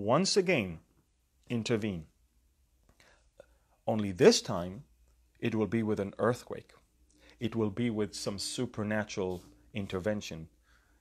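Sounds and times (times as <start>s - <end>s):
man speaking: 0.0s - 2.2s, 3.8s - 10.6s
faint breath: 2.9s - 3.8s, 10.5s - 11.0s.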